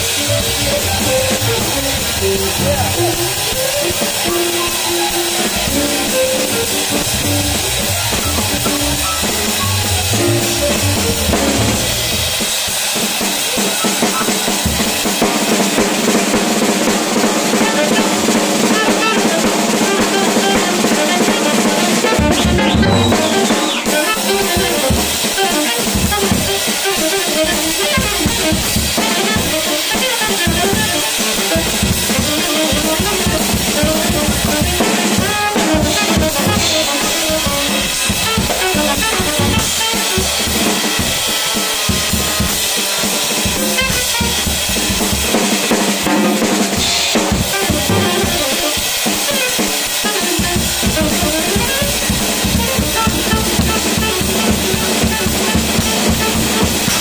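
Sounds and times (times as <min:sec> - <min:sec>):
drum kit played with sticks: 0:00.0 - 0:57.0
jazz combo: 0:00.0 - 0:57.0.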